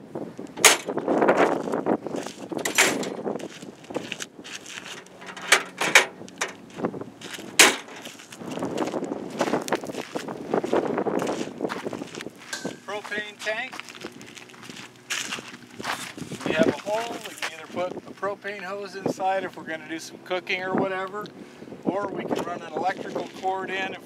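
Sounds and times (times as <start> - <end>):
handling noise: 0.4 - 17.6
metal doors shutting and latching: 0.6 - 1.0, 2.5 - 3.3, 4.9 - 6.7, 7.6 - 8.1.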